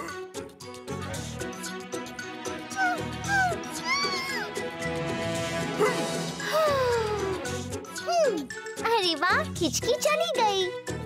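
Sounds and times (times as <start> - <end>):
light background music: 0.0 - 11.0
girl's cartoon voice speaking: 8.0 - 10.7.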